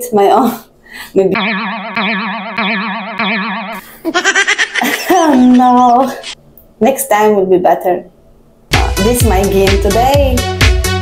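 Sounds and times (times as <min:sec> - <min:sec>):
wobbling cartoon tone: 0:01.4 - 0:05.9.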